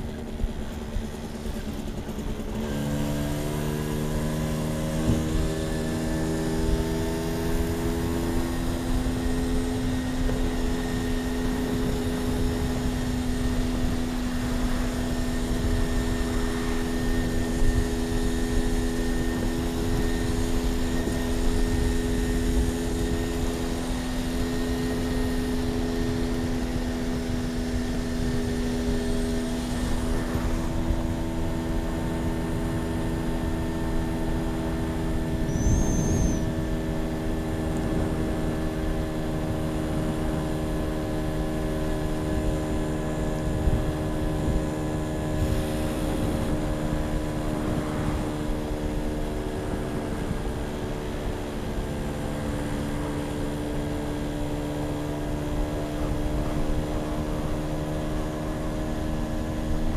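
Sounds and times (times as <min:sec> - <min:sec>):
motorbike engine: 0:00.0 - 0:59.9
wind rumble on microphone: 0:00.0 - 0:59.9.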